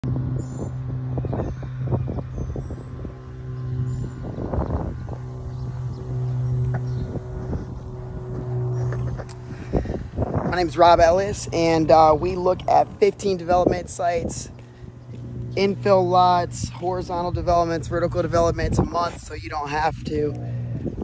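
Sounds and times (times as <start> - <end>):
steady low hum: 0.0 - 21.0
wind buffeting microphone: 0.0 - 21.0.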